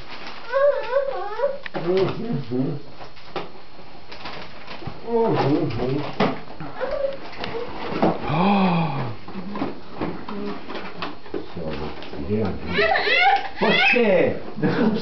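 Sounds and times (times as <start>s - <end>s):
gift wrapping crinkling: 0.0s - 8.4s
low voices: 8.2s - 10.7s.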